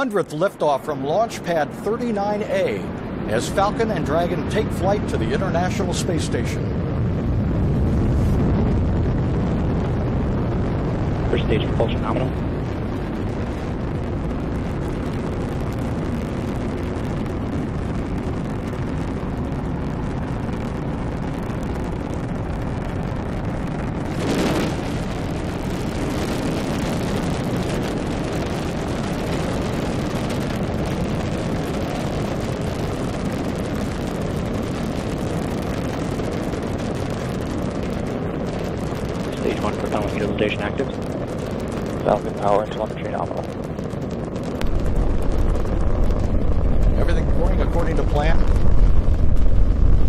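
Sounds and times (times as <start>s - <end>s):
deep rumbling rocket engines: 0.0s - 50.0s.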